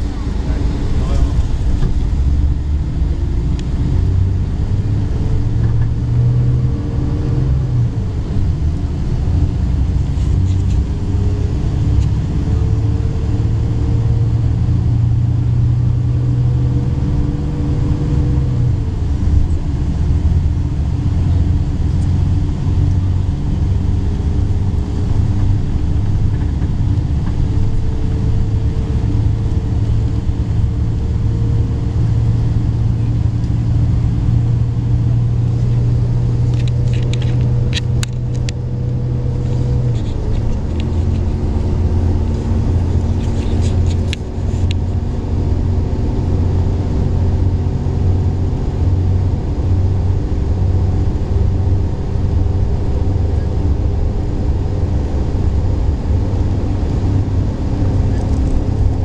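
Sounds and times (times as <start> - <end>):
bus engine drone: 0.0 - 59.0
road rumble: 0.0 - 59.0.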